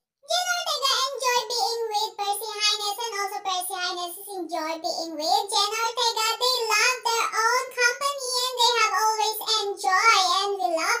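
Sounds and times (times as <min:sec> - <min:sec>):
high-pitched voice singing: 0:00.2 - 0:11.0.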